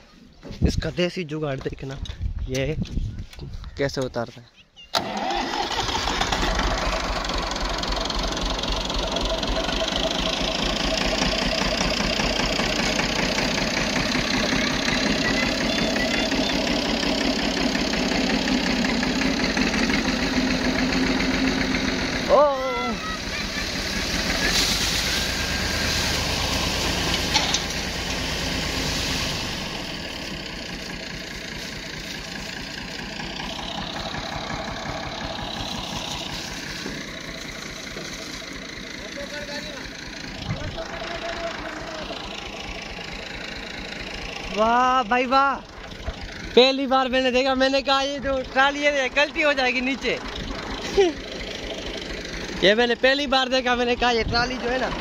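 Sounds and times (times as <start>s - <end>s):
tractor diesel engine running: 4.9s - 55.0s.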